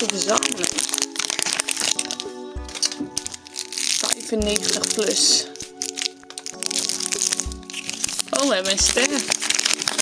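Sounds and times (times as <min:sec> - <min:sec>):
background music: 0:00.0 - 0:10.0
plastic capsule and wrapper crackling: 0:00.0 - 0:10.0.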